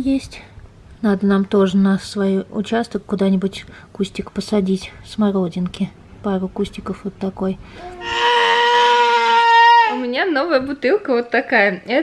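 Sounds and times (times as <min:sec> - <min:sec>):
toddler screaming: 0:07.8 - 0:10.0.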